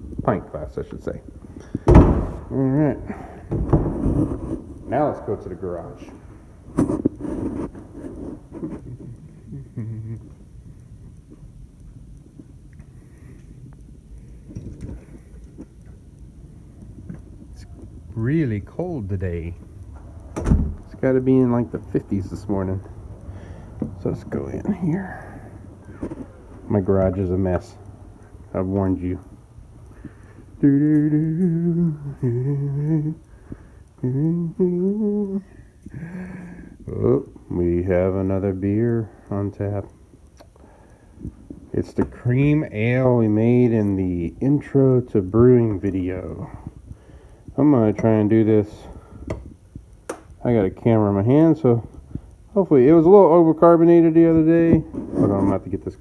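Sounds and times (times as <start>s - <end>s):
man humming: 2.4s - 3.5s, 8.8s - 10.6s, 30.5s - 37.1s
door clicks: 20.2s - 20.9s.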